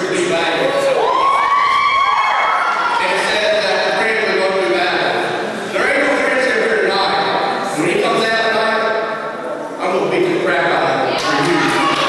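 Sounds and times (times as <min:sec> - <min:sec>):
children yelling: 0:00.6 - 0:03.6.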